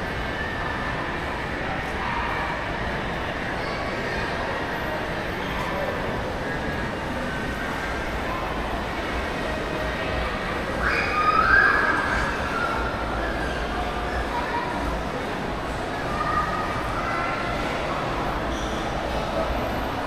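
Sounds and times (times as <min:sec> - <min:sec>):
faint distant voices: 0:00.0 - 0:20.0.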